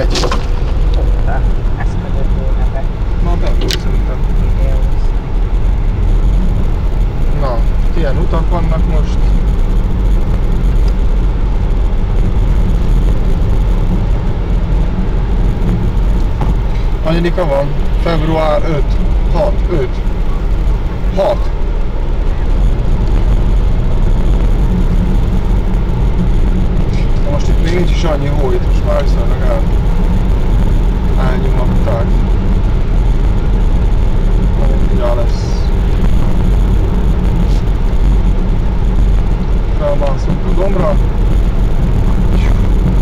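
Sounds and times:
car engine and tyres rumbling: 0.0 - 43.0.

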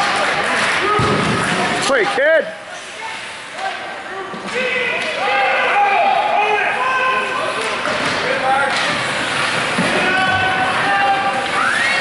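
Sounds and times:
spectators shouting: 4.5 - 7.5, 9.8 - 12.0.

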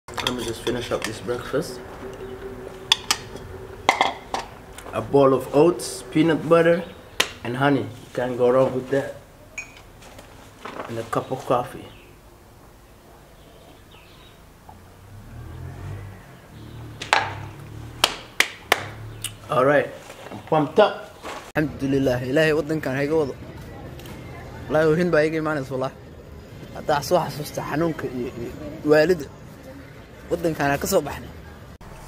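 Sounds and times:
low rumble: 0.2 - 7.4
hand clap: 18.0 - 19.0.

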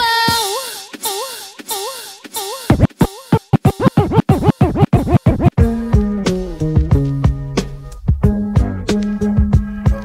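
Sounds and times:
record scratching: 2.7 - 5.6
electronic track with bass line: 2.7 - 10.0.

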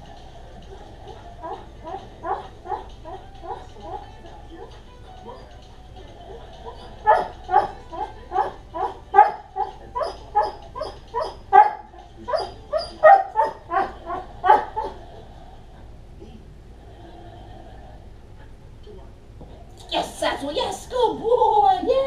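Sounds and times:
dog barking: 6.7 - 15.0.

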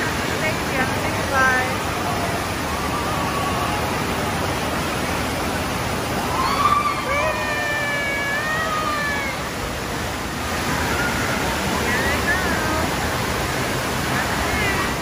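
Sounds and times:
water pouring into splash pool: 0.0 - 15.0
water splashing: 0.0 - 15.0.

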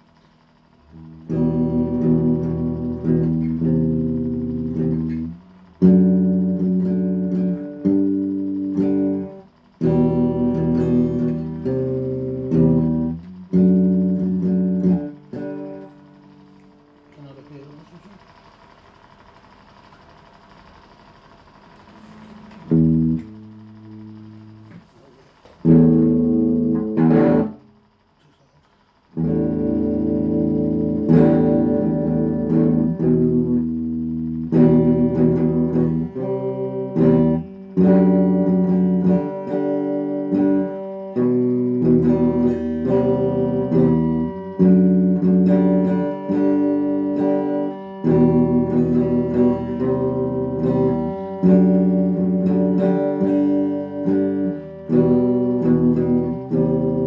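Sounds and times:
electric guitar chords: 0.0 - 57.0
faint hum: 0.0 - 57.0.

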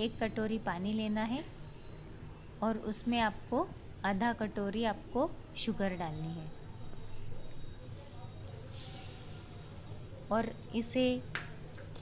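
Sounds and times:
sugar pouring into water: 8.1 - 10.2.

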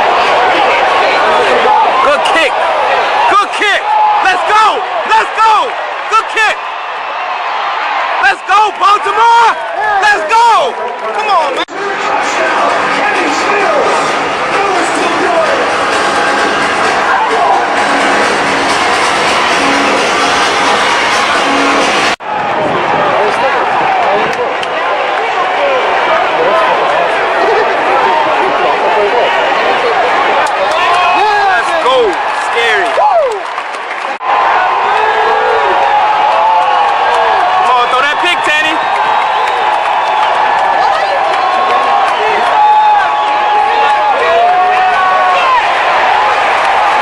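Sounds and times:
crowd talking and shouting: 0.0 - 47.0
music over sound system: 12.2 - 22.2.

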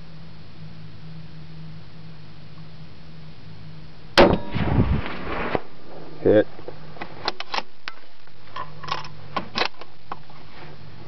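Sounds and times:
rifle shot: 4.2 - 6.2
ringing crackling tail: 4.2 - 6.7.

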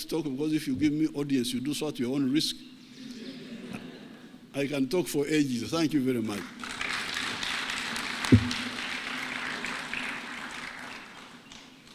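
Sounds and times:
audience applauding: 6.5 - 11.6
loud low thump: 8.3 - 8.8.

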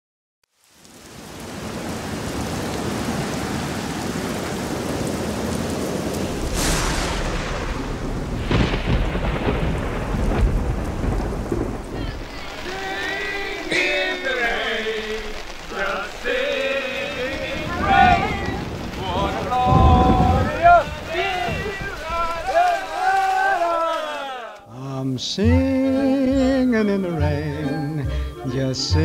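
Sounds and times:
heavy rain falling: 0.5 - 24.6
thunder cracks and rumble: 3.1 - 16.3, 17.0 - 23.0
pitched sounds: 11.9 - 23.2.

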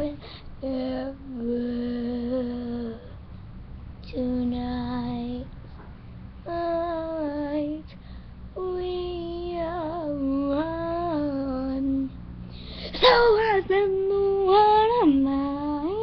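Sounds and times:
girl singing long held notes: 0.0 - 3.2, 6.4 - 16.0.

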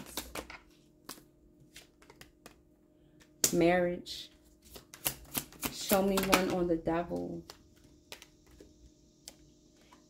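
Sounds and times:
cards snapping down: 4.7 - 6.5.

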